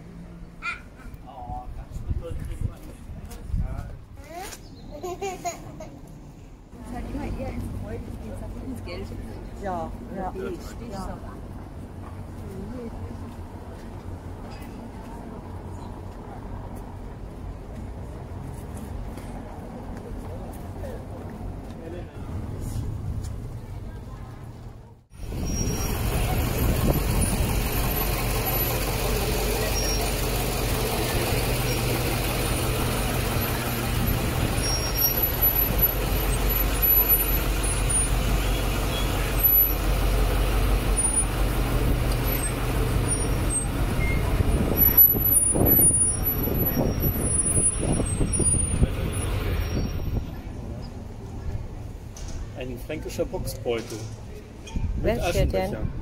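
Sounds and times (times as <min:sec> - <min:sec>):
bus diesel engine rumbling: 0:00.0 - 0:56.0.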